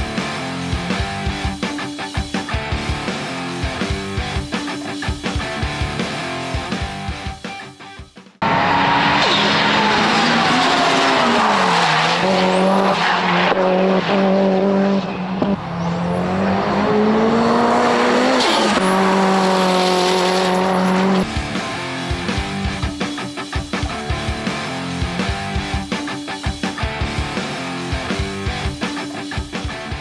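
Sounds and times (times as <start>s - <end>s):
car engine at high revs: 8.4s - 22.5s.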